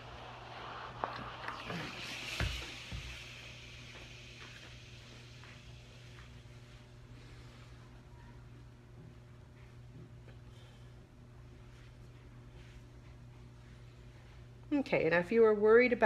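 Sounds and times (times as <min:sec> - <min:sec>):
steam iron hissing: 0:00.0 - 0:06.9.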